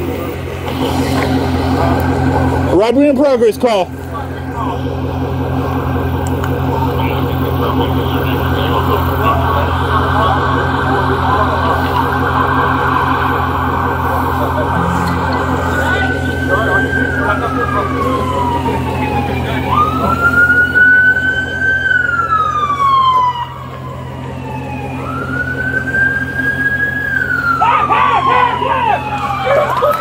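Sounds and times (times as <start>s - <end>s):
steady low hum: 0.0s - 21.4s
emergency siren wailing: 0.0s - 30.0s.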